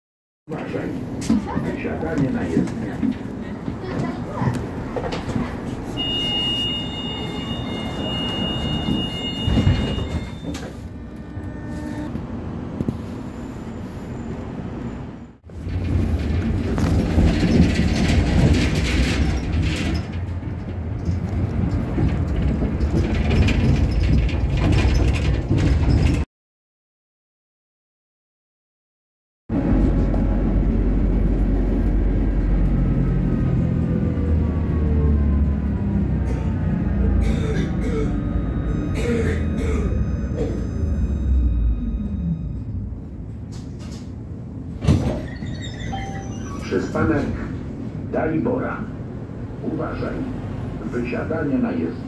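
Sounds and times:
tram running low rumble: 0.5s - 26.2s, 29.5s - 52.0s
high warning beep: 6.1s - 12.1s, 38.1s - 43.2s, 45.9s - 46.7s.

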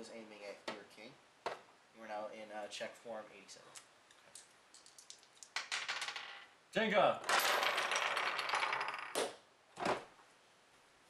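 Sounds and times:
wooden chess pieces clattering: 4.3s - 6.5s, 7.2s - 10.1s.

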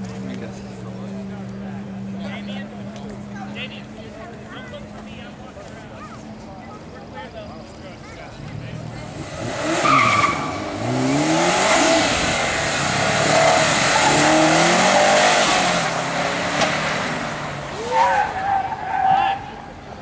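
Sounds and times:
car engine revving: 8.3s - 19.7s
tires squealing: 8.3s - 20.0s.

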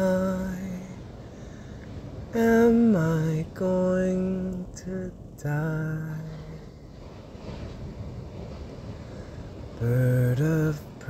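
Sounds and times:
man singing chant-like melody: 0.0s - 1.2s, 2.2s - 6.8s, 9.8s - 11.0s
low steady hiss: 0.0s - 11.0s.

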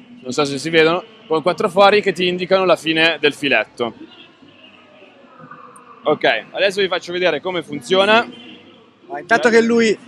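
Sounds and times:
distant voices: 0.0s - 10.0s
faint music: 0.0s - 10.0s.

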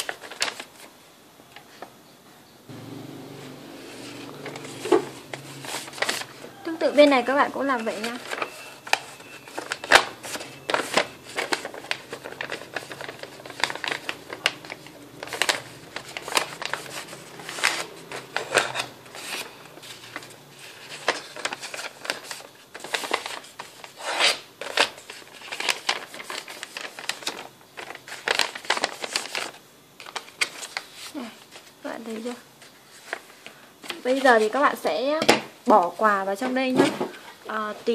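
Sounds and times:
paper rustling and crinkling: 0.0s - 1.0s, 3.5s - 34.9s.

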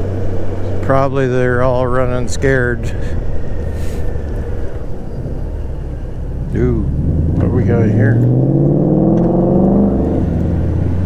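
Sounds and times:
road and wind noise: 0.0s - 11.0s.

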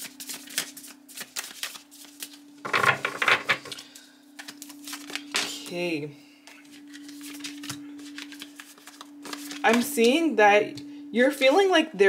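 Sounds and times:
cards clicking and rustling: 0.0s - 5.6s, 6.5s - 9.9s
low electrical hum: 0.0s - 12.0s.

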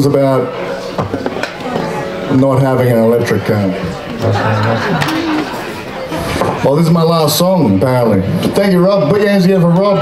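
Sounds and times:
audience chatter: 0.0s - 10.0s
electric guitar notes: 1.6s - 4.2s.

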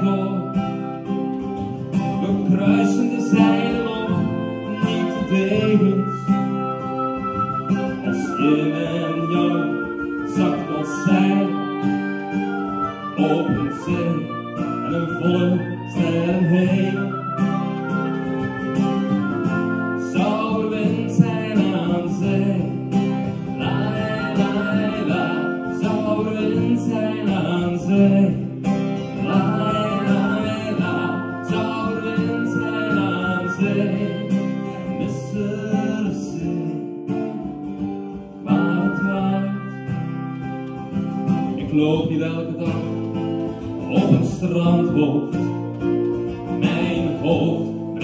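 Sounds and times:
acoustic guitar accompaniment: 0.0s - 48.0s
oboe playing a melody: 0.0s - 48.0s.

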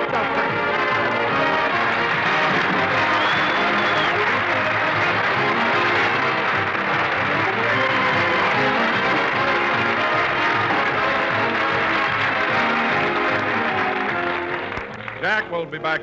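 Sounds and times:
audience applause: 0.0s - 15.6s
orchestra playing: 0.0s - 16.0s.

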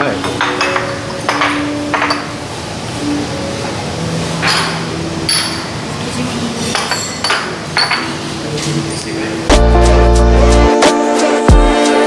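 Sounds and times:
ceramic dishes and glasses clinking: 0.0s - 2.5s, 4.4s - 9.2s.

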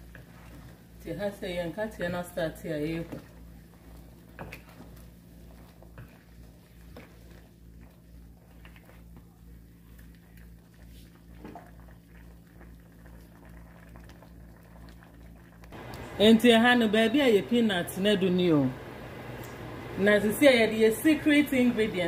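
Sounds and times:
faint bubbling pot: 0.0s - 22.0s.

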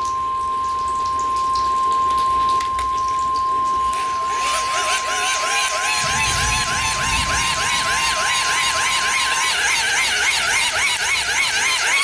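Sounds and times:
warbling siren-like chirp: 4.2s - 12.0s.

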